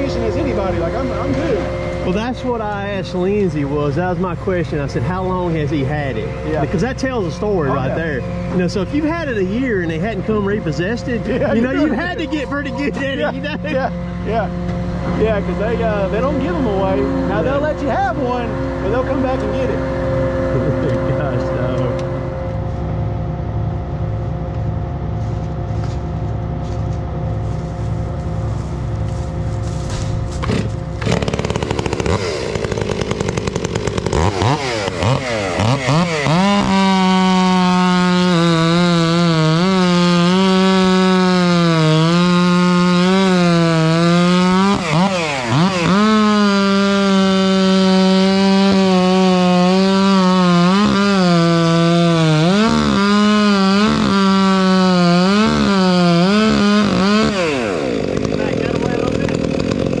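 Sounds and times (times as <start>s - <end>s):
chainsaw cutting tree trunk: 0.0s - 60.0s.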